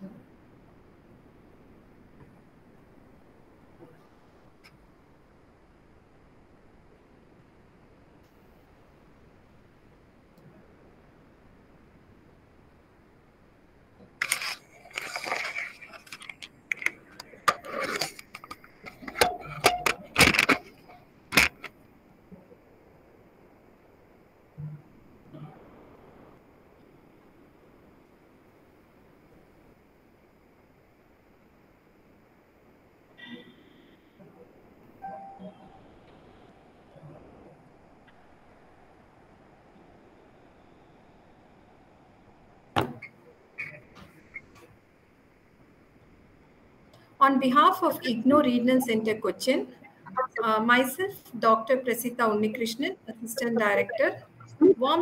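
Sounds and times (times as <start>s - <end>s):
faint hiss: 0.0s - 55.0s
handling rustling: 14.2s - 21.7s
loud thump: 42.8s - 43.0s.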